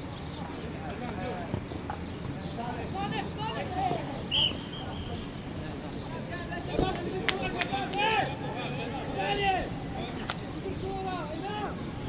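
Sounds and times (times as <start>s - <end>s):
distant players shouting: 1.1s - 12.0s.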